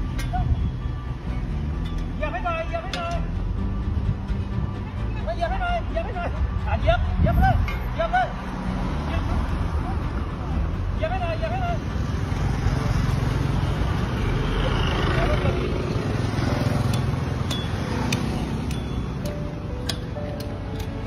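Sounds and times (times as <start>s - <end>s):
music with light ticking beat: 0.0s - 12.0s, 16.3s - 21.0s
road traffic rumble: 0.0s - 21.0s.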